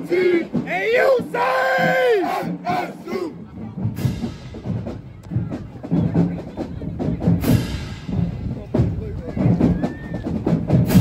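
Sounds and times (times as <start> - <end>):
voices yelling a chant: 0.0 - 3.6
marching drumline playing: 0.0 - 11.0.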